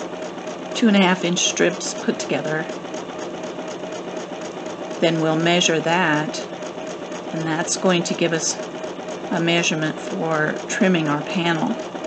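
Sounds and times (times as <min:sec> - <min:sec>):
sewing machine running: 0:00.0 - 0:12.0.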